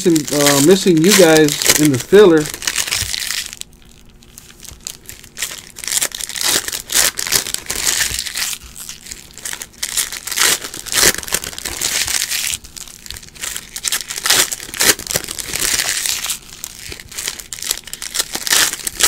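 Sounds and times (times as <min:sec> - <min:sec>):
foil wrappers crinkling and tearing: 0:00.0 - 0:19.0.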